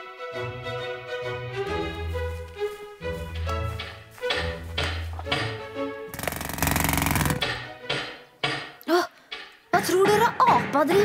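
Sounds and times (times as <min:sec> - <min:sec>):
fast mechanical rattle: 0:06.2 - 0:07.6.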